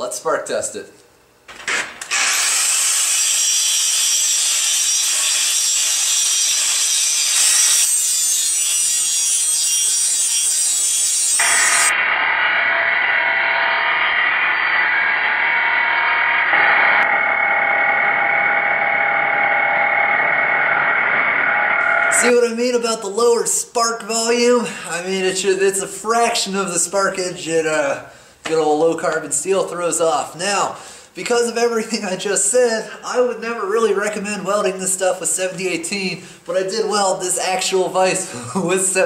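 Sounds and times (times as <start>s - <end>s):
angle grinder grinding metal: 2.0s - 12.1s, 14.0s - 22.4s.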